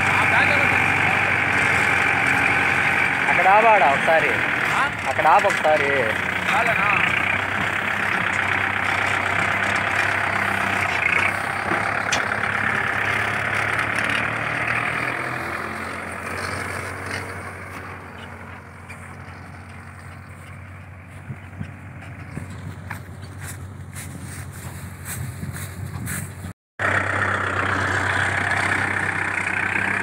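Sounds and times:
tractor diesel engine running: 0.0s - 30.0s.

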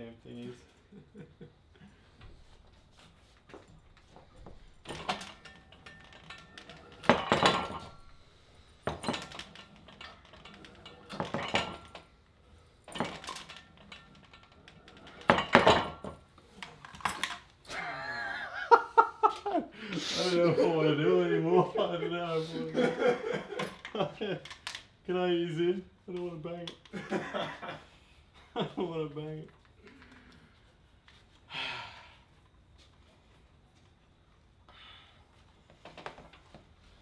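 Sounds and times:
weight plates clanking: 4.0s - 17.5s
man speaking: 20.0s - 22.9s.

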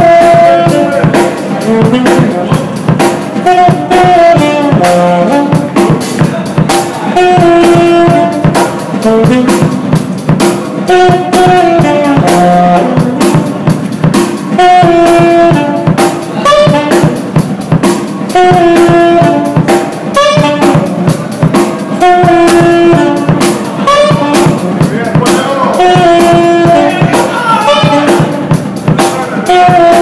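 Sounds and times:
drum kit beat: 0.0s - 30.0s
held brass notes: 0.0s - 30.0s.

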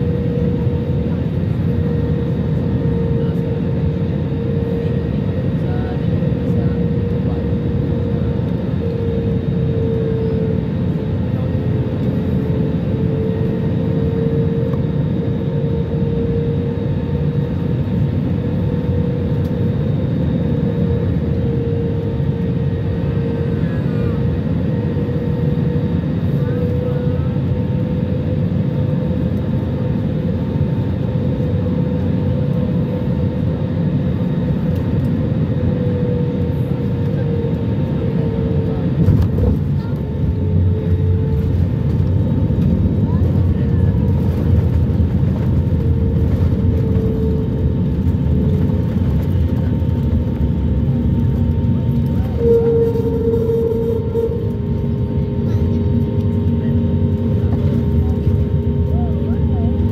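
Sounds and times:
jet engines and airflow rumble: 0.0s - 59.9s
steady wavering whine: 0.0s - 59.9s.

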